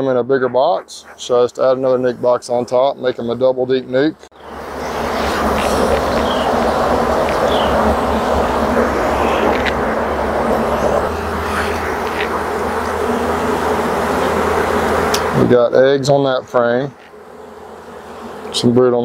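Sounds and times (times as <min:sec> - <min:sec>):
honeybees buzzing: 0:00.0 - 0:19.0.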